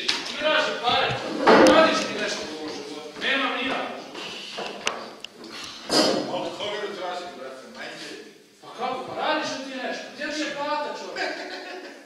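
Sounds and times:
actors talking: 0:00.0 - 0:12.0.

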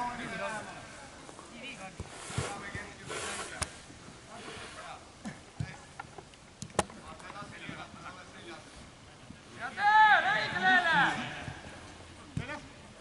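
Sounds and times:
distant players shouting: 0:09.6 - 0:12.7.

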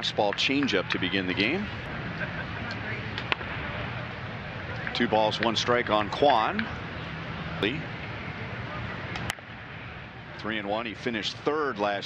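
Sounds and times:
crowd murmur: 0:00.0 - 0:12.0.

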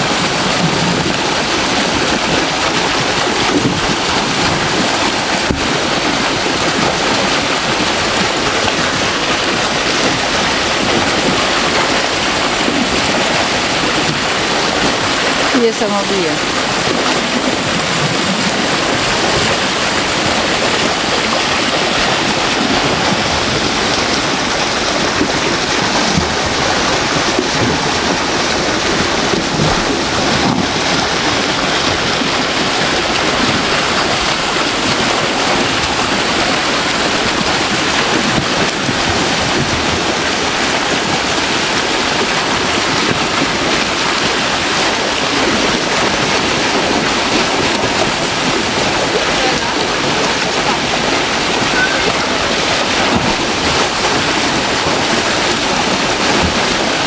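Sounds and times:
water rushing over a weir: 0:00.0 - 0:57.0.

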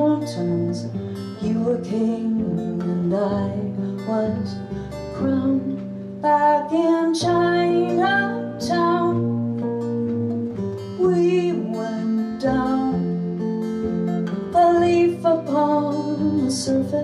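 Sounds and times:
plucked upright bass: 0:00.0 - 0:17.0
strummed acoustic guitar: 0:00.0 - 0:17.0
woman singing: 0:00.0 - 0:17.0.

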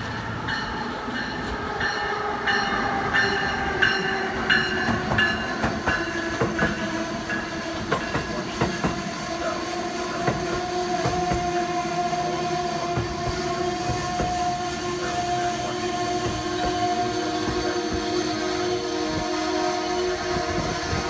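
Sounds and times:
train whine: 0:00.0 - 0:21.0
train wheels clicking on rail joints: 0:02.7 - 0:21.0.

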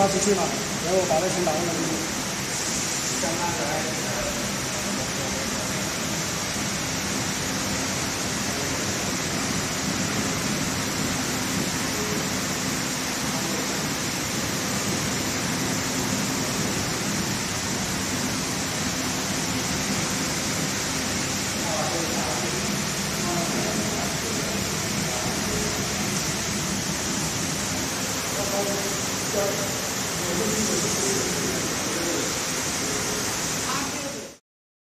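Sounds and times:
steady workshop hiss: 0:00.0 - 0:34.4.

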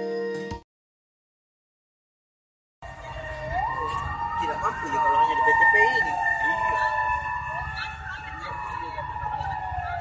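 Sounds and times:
fire engine siren wailing: 0:02.8 - 0:10.0.

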